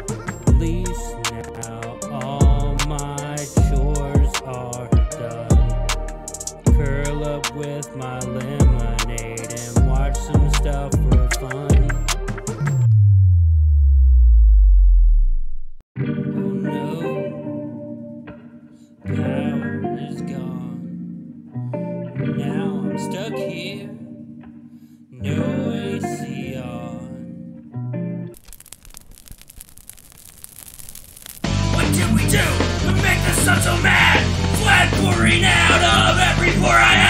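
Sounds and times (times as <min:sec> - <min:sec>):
power-down tone sliding downward: 0:12.8 - 0:15.8
faint hiss: 0:28.4 - 0:31.4
dense irregular crackling clicks: 0:28.4 - 0:31.5.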